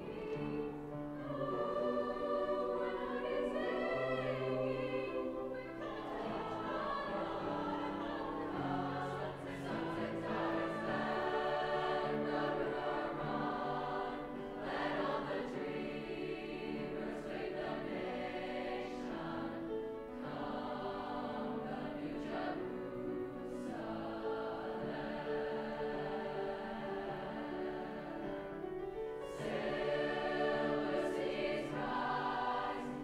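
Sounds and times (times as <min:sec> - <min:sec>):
choir singing: 0:00.0 - 0:33.0.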